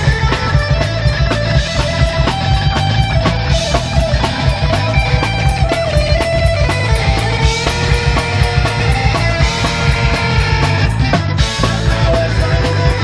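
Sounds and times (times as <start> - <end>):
bass guitar: 0.0 - 13.0
distorted electric guitar: 0.0 - 13.0
drum kit fast beat: 0.0 - 13.0.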